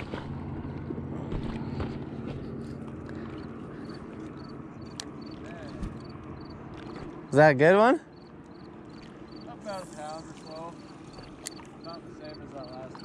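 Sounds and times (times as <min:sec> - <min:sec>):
low engine-like hum: 0:00.0 - 0:13.0
outdoor background noise: 0:00.0 - 0:13.0.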